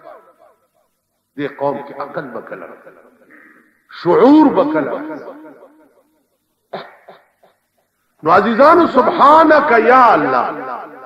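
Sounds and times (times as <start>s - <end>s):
man coughing: 6.7s - 7.4s.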